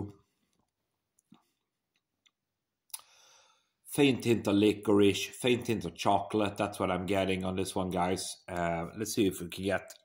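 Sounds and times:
faint mouth clicks: 2.2s - 3.1s
short breath: 3.0s - 3.8s.

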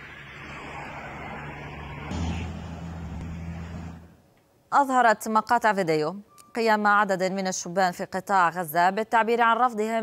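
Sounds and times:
vehicle engine humming: 0.0s - 4.4s
street noise: 0.0s - 4.8s.

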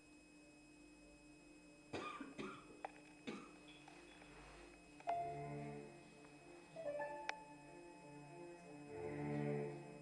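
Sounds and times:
person coughing: 2.0s - 3.6s.

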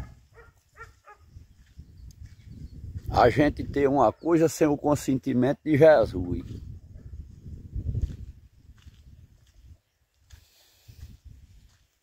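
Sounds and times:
wind rumble: 0.0s - 3.9s, 6.1s - 9.8s.

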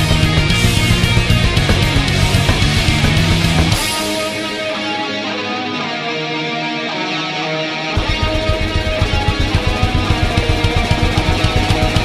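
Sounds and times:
drums and bass fast beat: 0.0s - 4.7s, 8.0s - 12.0s
heavy metal guitars: 0.0s - 12.0s.

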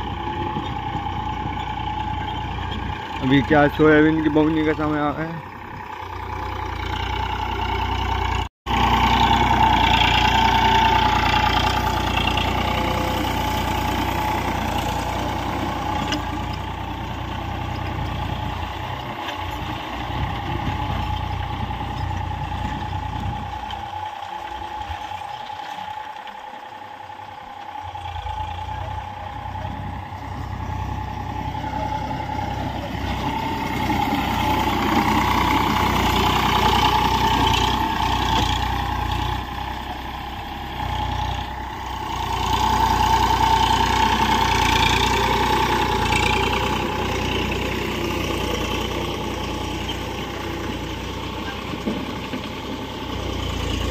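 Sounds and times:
tractor diesel engine running: 0.0s - 53.9s.

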